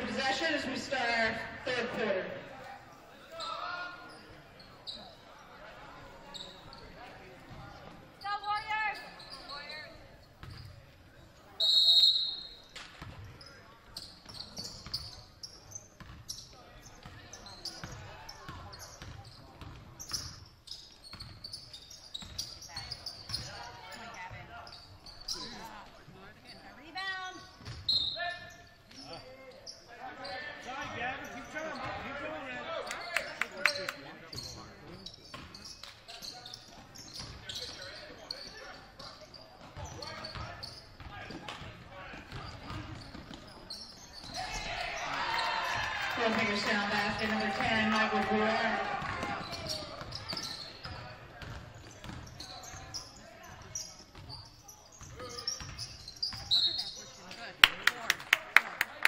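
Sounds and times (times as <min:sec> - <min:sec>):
basketball bouncing on wooden floor: 0:16.0 - 0:16.2, 0:19.0 - 0:19.9, 0:51.4 - 0:52.2.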